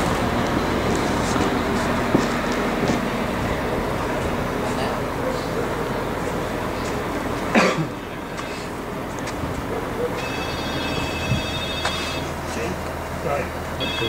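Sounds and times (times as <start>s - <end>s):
crane engine humming: 0.0s - 14.0s
high ringing tone: 10.1s - 12.4s, 13.7s - 14.0s.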